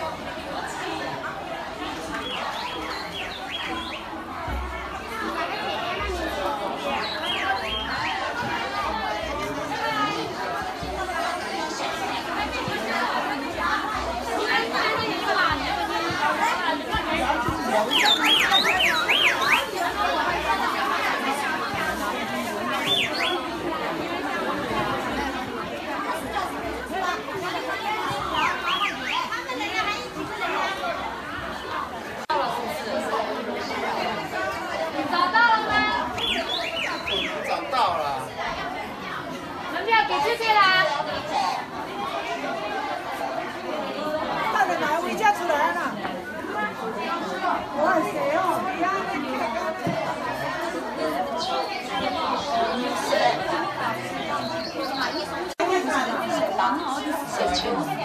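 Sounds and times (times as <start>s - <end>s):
crowd chattering: 0.0s - 58.0s.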